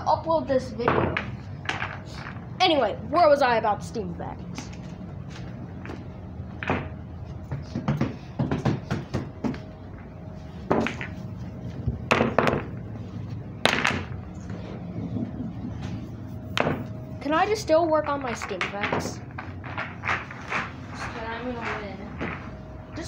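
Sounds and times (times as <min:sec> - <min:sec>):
faint steady hum: 0:00.0 - 0:23.0
thumps and knocks: 0:12.1 - 0:12.8, 0:16.5 - 0:16.9, 0:18.0 - 0:20.7.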